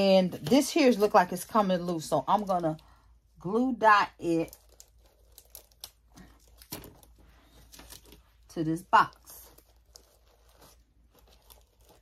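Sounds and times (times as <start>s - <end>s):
paper box handling noises: 4.3s - 12.0s.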